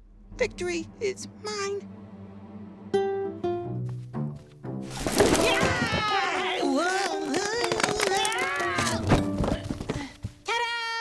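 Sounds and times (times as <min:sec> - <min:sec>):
background music: 0:00.0 - 0:10.6
puppet tumbling thump: 0:04.9 - 0:06.3, 0:08.8 - 0:10.0.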